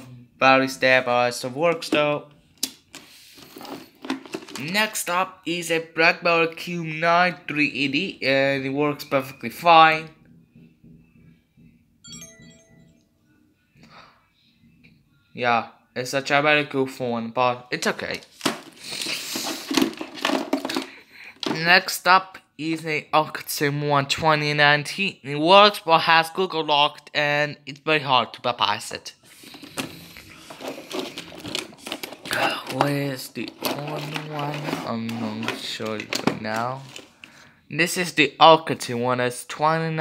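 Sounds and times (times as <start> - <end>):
smartphone electronic chime: 12.0 - 13.2
hand rummaging through cables: 29.5 - 37.3.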